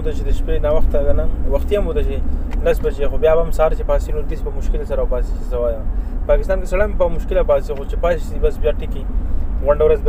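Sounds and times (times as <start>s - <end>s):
car road and engine rumble: 0.0s - 10.0s
man talking: 0.0s - 10.0s.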